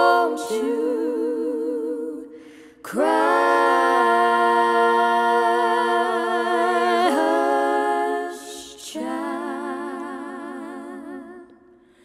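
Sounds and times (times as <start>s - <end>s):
a cappella harmony singing: 0.0s - 12.0s.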